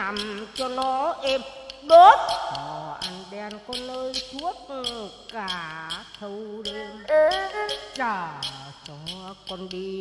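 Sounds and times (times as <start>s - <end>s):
person singing: 0.0s - 10.0s
sharp clapper clicks: 0.0s - 10.0s.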